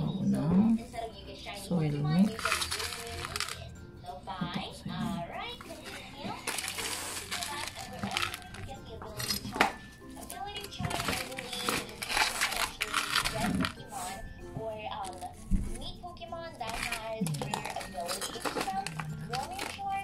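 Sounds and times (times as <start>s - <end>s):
child's voice: 0.0s - 20.0s
rustling handling noise: 1.9s - 3.7s, 4.3s - 20.0s.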